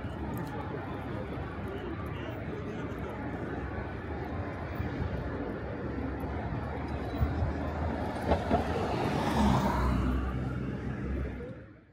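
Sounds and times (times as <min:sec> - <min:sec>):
low traffic rumble: 0:00.0 - 0:11.9.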